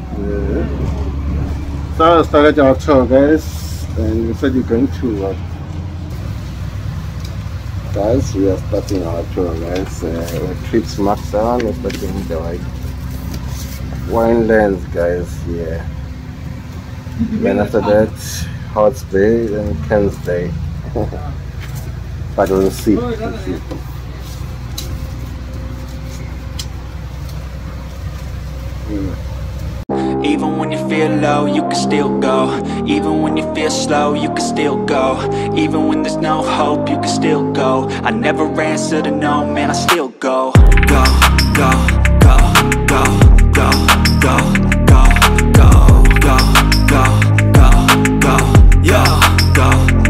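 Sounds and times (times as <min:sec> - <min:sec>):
bus engine and road rumble: 0:00.0 - 0:29.9
music: 0:29.9 - 0:50.0.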